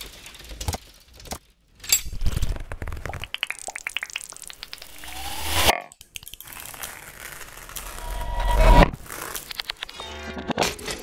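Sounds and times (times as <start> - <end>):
electroacoustic crackling and clicking: 0.0 - 1.5, 2.1 - 10.1
rising glide: 4.6 - 5.7.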